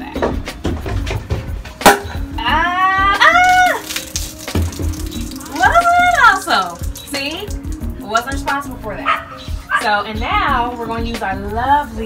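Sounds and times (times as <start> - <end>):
high-pitched vocal cries: 2.4 - 4.0.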